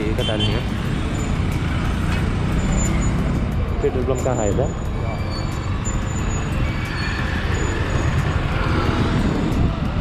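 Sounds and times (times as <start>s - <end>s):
wind rumble on microphone: 7.8s - 10.0s.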